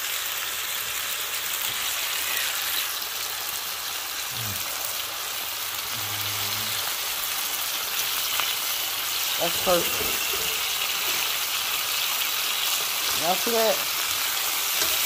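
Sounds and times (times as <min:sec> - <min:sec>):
meat sizzling in a frying pan: 0:00.0 - 0:15.0.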